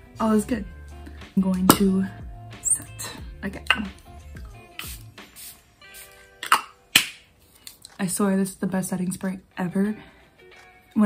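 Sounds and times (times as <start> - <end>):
soft background music: 0.0 - 11.0
spray bottle spritzes: 4.7 - 7.2.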